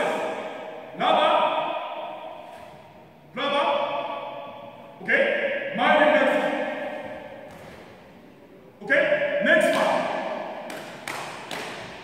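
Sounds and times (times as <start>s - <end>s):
sharp snaps echoing in a hall: 0.0s - 12.0s.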